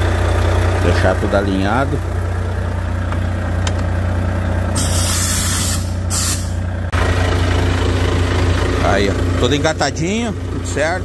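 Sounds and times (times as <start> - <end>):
truck engine idling: 0.0 - 11.0
compressed air hissing: 4.8 - 6.6.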